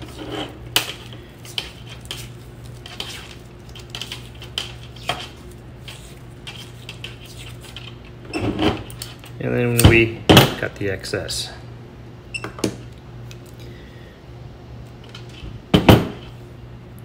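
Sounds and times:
tape peeling and rustling: 0.0 - 9.4
steady low hum: 0.0 - 17.0.

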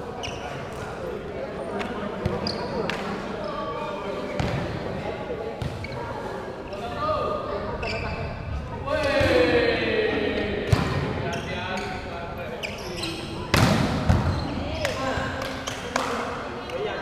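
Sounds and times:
volleyball strikes echoing: 10.6 - 11.2, 13.5 - 16.2.

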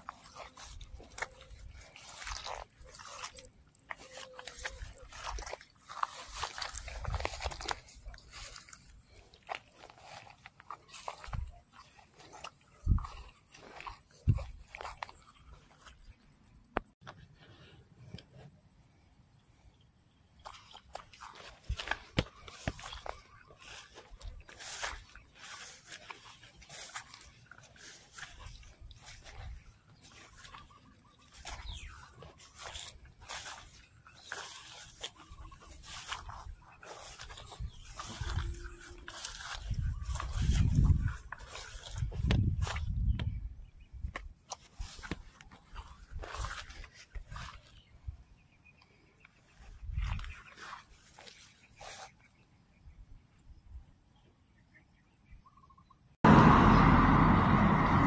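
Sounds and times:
rice plants rustling: 0.0 - 16.2, 20.4 - 43.4, 44.1 - 48.1, 48.9 - 52.2.

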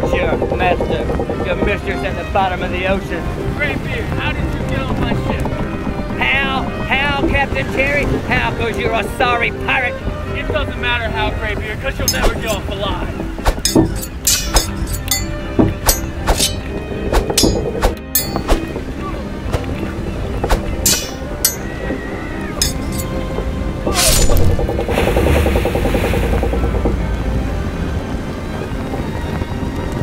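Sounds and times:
background music: 0.0 - 30.0
poles clacking together: 12.0 - 12.7, 13.4 - 18.8, 20.4 - 27.0.

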